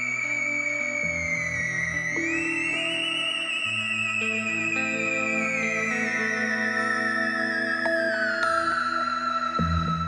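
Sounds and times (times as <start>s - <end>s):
theremin wavering melody: 0.0s - 10.0s.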